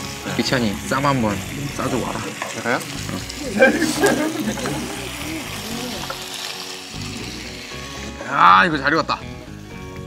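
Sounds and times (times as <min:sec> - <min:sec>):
meat sizzling in a pan: 0:00.0 - 0:10.0
tongs turning meat: 0:00.4 - 0:07.5.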